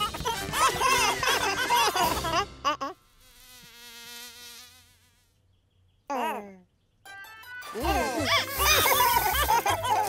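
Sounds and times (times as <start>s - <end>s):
music: 0.0s - 2.7s, 7.0s - 10.0s
cartoon character voices: 6.1s - 9.0s
cartoon buzzing effect: 7.6s - 10.0s.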